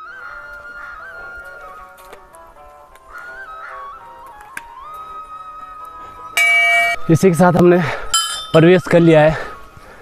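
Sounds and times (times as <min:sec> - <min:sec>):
soft flute music: 0:00.0 - 0:07.1
brass bell ringing: 0:06.4 - 0:07.0.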